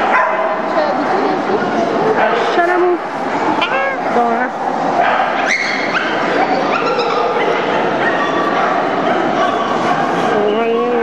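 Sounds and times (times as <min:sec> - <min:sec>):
crowd chatter in hall: 0:00.0 - 0:11.0
dogs yipping and barking: 0:03.6 - 0:04.1, 0:04.8 - 0:10.5.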